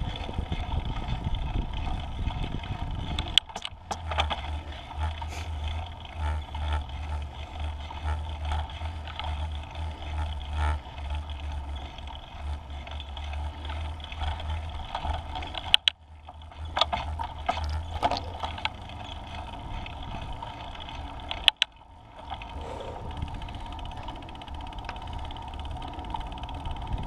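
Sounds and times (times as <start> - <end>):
wind rushing over microphone: 0.0 - 3.9, 22.5 - 24.0
scooter low rumble: 0.0 - 27.0.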